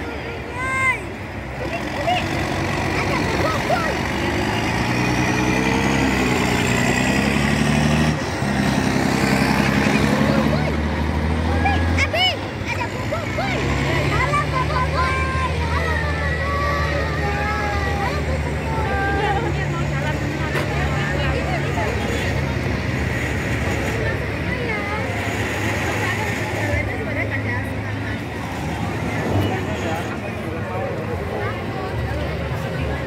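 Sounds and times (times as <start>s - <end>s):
crowd chatter: 0.0s - 33.0s
tracked vehicle engine humming: 0.0s - 33.0s.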